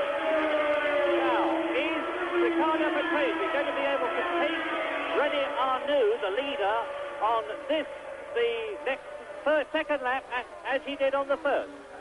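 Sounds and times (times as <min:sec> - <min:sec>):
racing car engines at high revs: 0:00.0 - 0:09.5.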